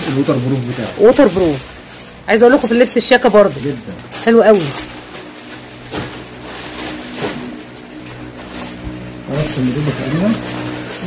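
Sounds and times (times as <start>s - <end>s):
person speaking: 0.0s - 4.8s, 9.3s - 10.5s
jacket rustling: 0.0s - 11.0s
low mechanical hum: 0.0s - 11.0s.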